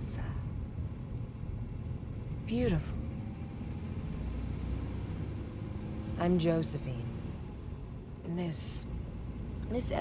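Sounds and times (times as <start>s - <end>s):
car engine rumble and road noise: 0.0s - 10.0s.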